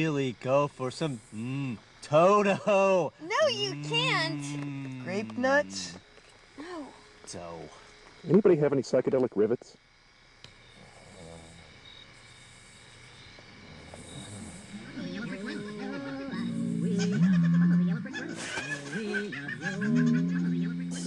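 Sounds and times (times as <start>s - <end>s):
eerie warbling wailing voice: 15.0s - 21.0s.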